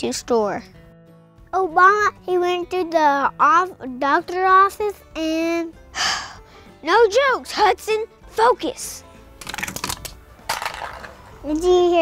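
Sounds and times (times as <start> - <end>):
cans clattering on asphalt: 9.4 - 11.5.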